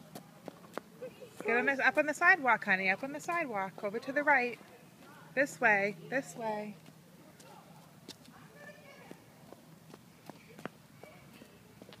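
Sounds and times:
footsteps on asphalt: 6.7s - 12.0s.

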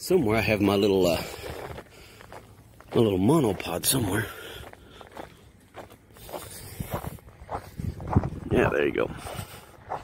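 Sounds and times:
footsteps crunching on snow: 0.3s - 10.0s.

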